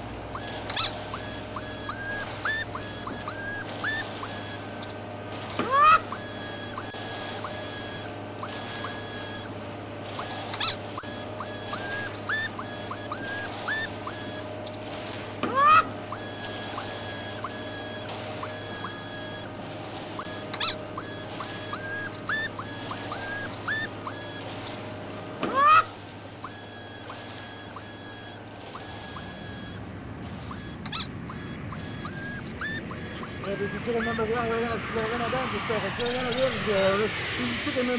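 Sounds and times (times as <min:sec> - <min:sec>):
steady low hum: 0:00.0 - 0:37.9
electronic chirps and beeps: 0:00.3 - 0:04.6, 0:05.7 - 0:09.5, 0:10.2 - 0:14.4, 0:15.6 - 0:19.5, 0:20.2 - 0:24.4, 0:26.4 - 0:29.8, 0:30.5 - 0:37.9.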